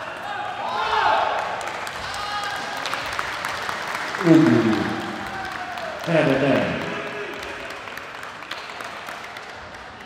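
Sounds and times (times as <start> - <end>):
small crowd applauding: 1.1 - 10.0.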